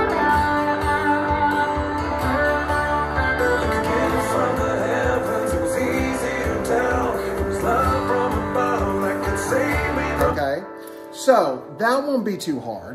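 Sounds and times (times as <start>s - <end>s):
rock song with singing: 0.0s - 11.1s
electric guitar strumming chords: 0.0s - 11.8s.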